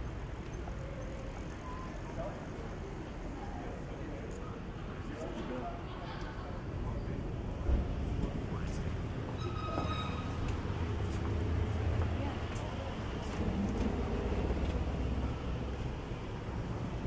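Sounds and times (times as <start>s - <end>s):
city street traffic rumble: 0.0s - 17.0s.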